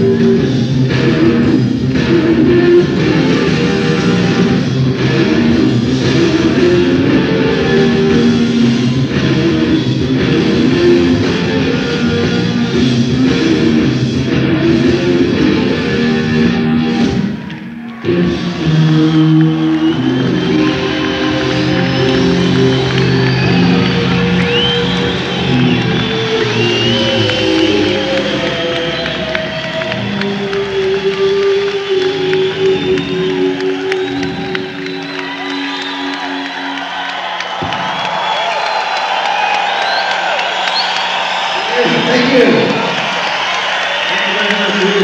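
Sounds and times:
audience cheering and whistling: 0.0 - 45.0
electric guitar sustained notes: 0.0 - 45.0.

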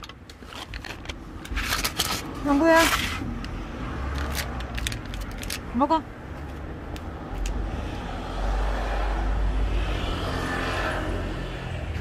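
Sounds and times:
motor vehicle passing: 6.2 - 12.0.

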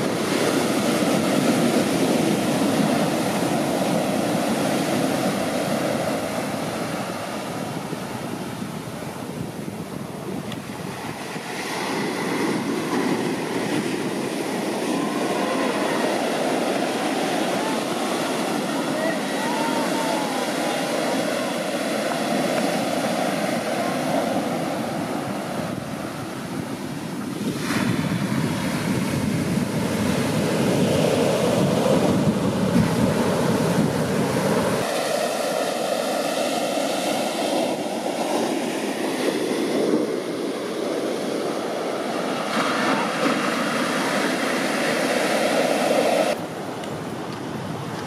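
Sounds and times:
ocean waves breaking ashore: 0.0 - 48.0
wind on microphone: 0.0 - 48.0.

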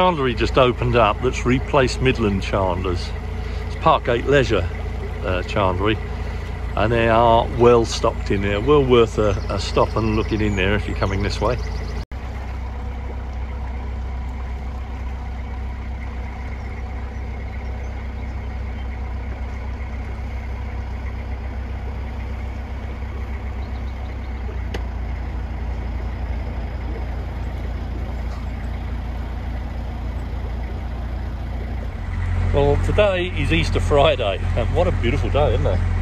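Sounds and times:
diesel engine droning: 0.0 - 36.0.

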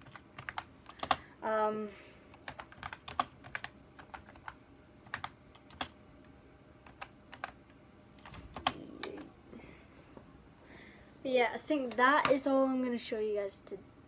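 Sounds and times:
keyboard keystrokes: 0.0 - 1.2, 2.4 - 6.0, 6.8 - 7.6, 8.2 - 9.3.

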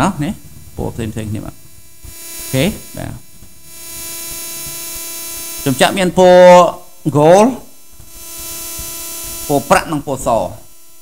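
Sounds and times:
electrical hum: 0.0 - 11.0
microphone hiss: 0.0 - 11.0.

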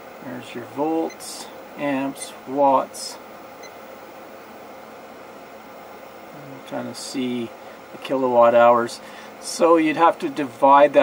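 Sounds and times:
space heater fan running: 0.0 - 11.0.

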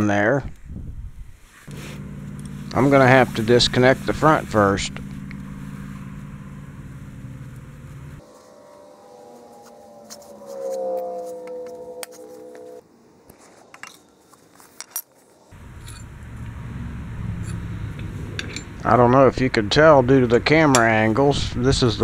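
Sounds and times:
steady low hum: 0.6 - 12.8, 15.5 - 22.0
small metal clicks and clinks: 15.8 - 16.1.

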